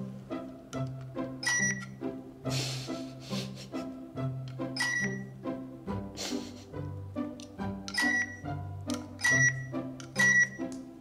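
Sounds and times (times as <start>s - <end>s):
background music: 0.0s - 11.0s
short high electronic beeps: 9.2s - 10.6s.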